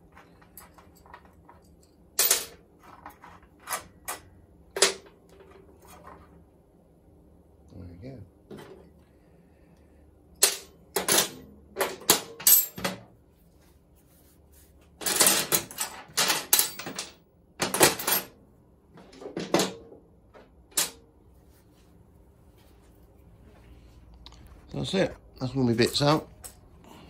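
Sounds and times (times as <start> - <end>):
metal parts and tools clinking: 0.0 - 6.0, 10.4 - 13.0, 15.0 - 18.4.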